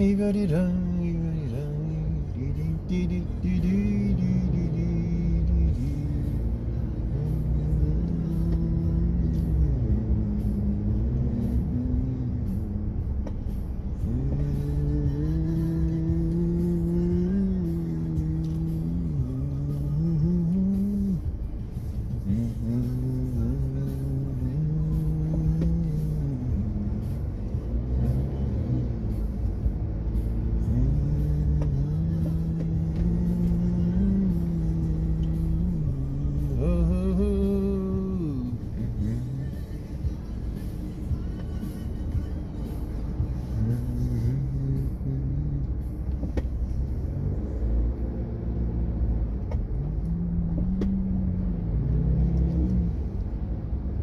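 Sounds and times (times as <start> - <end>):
car road rumble from inside: 0.0 - 54.0
low male wordless singing: 0.0 - 54.0.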